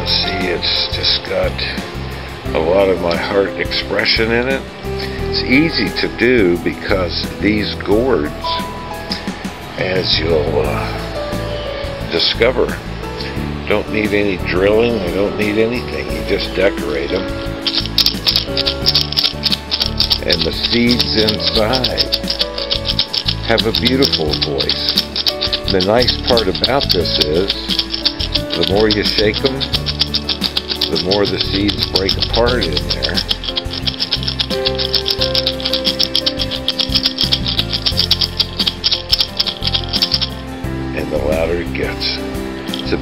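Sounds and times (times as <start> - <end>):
background music: 0.0 - 43.0
gourd rattle shaking: 16.9 - 40.4, 42.6 - 43.0.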